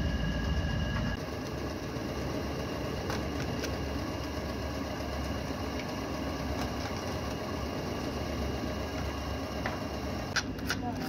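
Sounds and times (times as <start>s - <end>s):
machinery humming: 0.0s - 11.0s.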